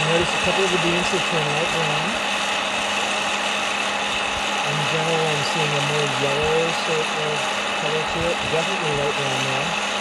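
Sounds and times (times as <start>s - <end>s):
popcorn popper fan humming: 0.0s - 10.0s.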